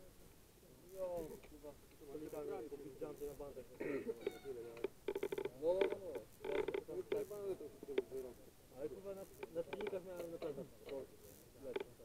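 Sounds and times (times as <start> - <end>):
men speaking: 0.6 - 12.0.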